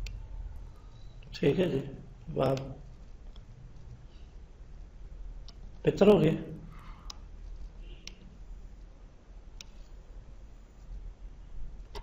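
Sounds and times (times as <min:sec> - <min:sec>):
steady low hum: 0:00.0 - 0:12.0
computer mouse click: 0:09.6 - 0:09.8.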